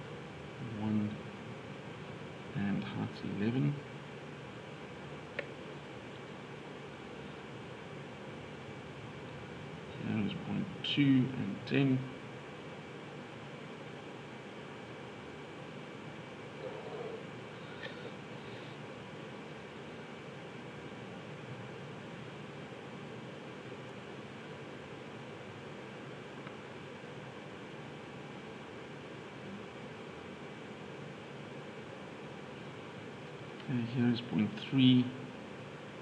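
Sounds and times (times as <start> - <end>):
faint room noise hiss: 0.0 - 36.0.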